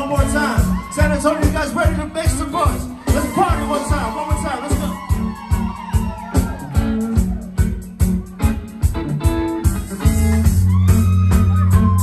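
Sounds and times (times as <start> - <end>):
drum beat: 0.0 - 12.0
electric guitar: 2.7 - 12.0.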